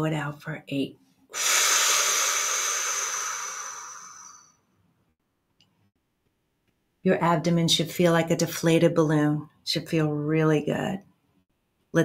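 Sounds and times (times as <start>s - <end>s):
woman blowing out breath: 1.3s - 4.7s.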